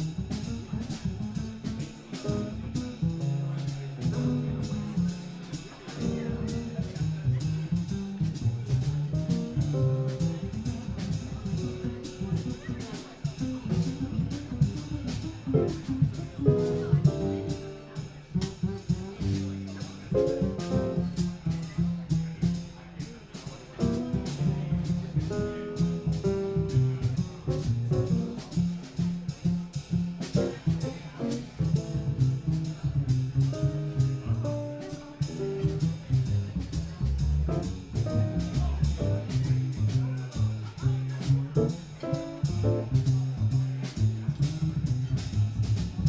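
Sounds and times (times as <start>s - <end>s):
drum kit cymbal strokes: 0.0s - 46.0s
plucked double bass: 0.0s - 46.0s
piano chords: 4.1s - 5.1s, 5.9s - 7.0s, 9.2s - 10.5s, 15.4s - 18.2s, 20.0s - 21.1s, 23.8s - 28.4s, 37.4s - 39.3s, 41.6s - 42.9s.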